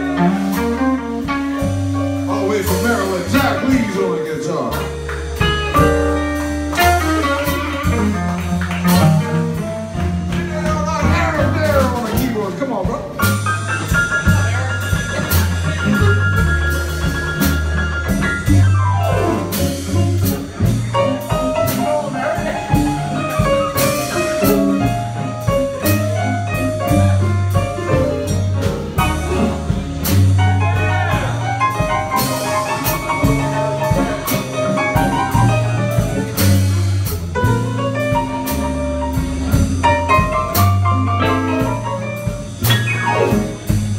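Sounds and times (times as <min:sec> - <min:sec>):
electric guitar lead: 0:00.0 - 0:11.6, 0:13.4 - 0:43.9
blues band playing: 0:00.0 - 0:43.9.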